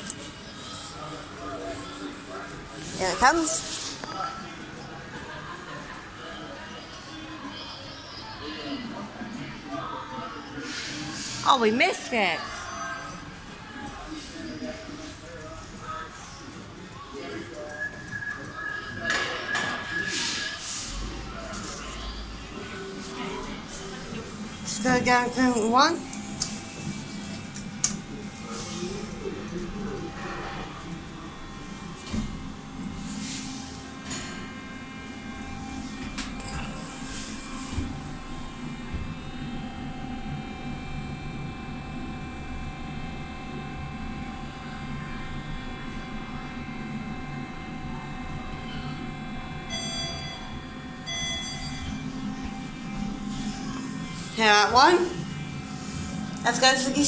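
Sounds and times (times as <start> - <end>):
lift hum and whine: 0.0 - 57.0.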